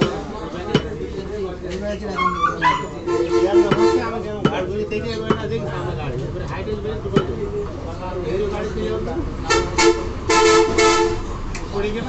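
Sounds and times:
vehicle horn honking: 9.5s - 11.2s.

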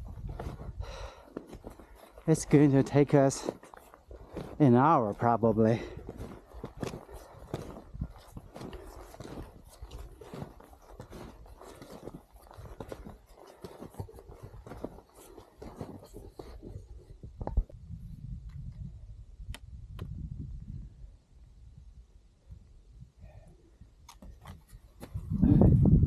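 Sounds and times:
footsteps crunching in slushy snow: 0.0s - 17.1s.

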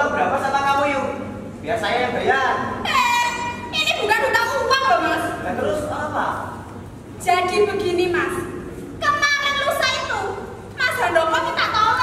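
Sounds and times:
actors speaking dialogue: 0.0s - 12.0s.

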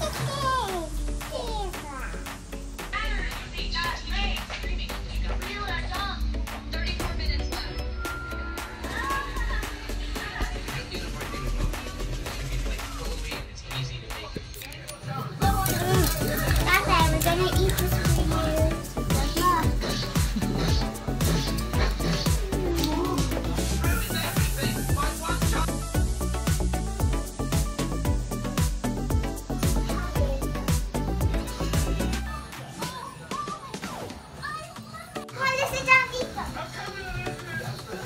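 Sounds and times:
music with steady bass beat: 0.0s - 14.4s, 15.4s - 32.4s
children chattering and playing: 15.4s - 24.4s, 29.7s - 38.0s.

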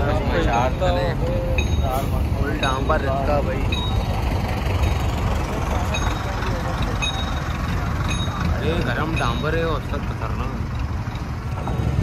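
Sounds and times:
vehicle engine and tyres rumbling: 0.0s - 12.0s.

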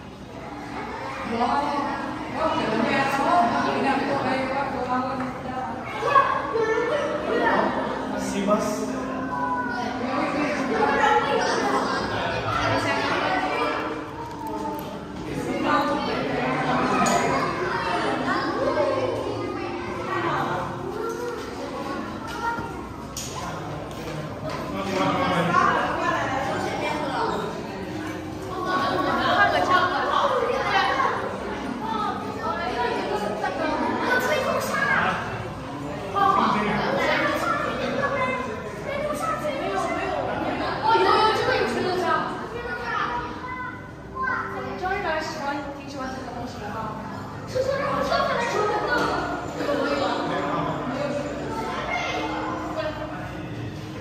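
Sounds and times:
children chattering and calling out: 0.0s - 54.0s
people talking: 0.0s - 54.0s.

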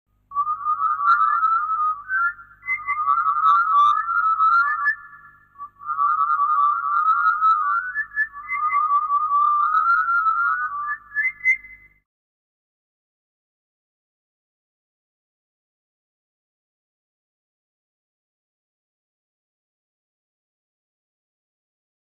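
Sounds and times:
warbling whistle-like melody: 0.3s - 12.0s.

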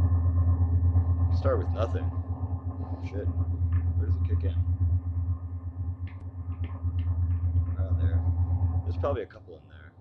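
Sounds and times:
pulsing electronic drone: 0.0s - 10.0s.

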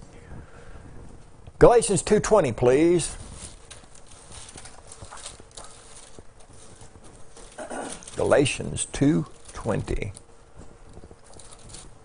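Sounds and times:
faint steady hum: 0.0s - 12.0s
pages being turned: 2.8s - 12.0s.

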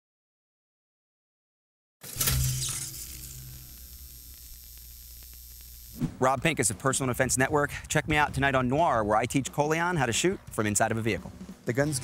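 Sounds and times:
static-like noise burst: 2.2s - 6.2s
faint scattered ticks: 2.8s - 6.0s.

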